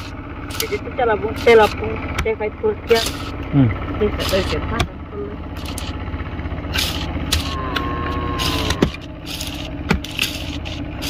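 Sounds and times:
steady low hum: 0:00.0 - 0:11.0
blade chopping through dry brush: 0:06.7 - 0:07.6, 0:08.4 - 0:11.0
thin held tone: 0:07.0 - 0:09.0.

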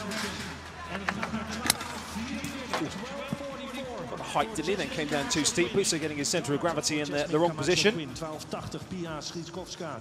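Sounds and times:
crowd voices: 0:00.0 - 0:08.8.

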